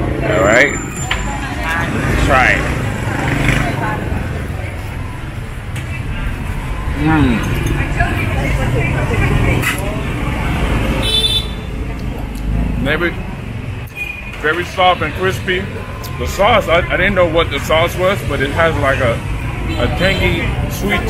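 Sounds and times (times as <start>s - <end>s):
street traffic rumbling: 0.0s - 21.0s
people talking: 0.2s - 10.9s.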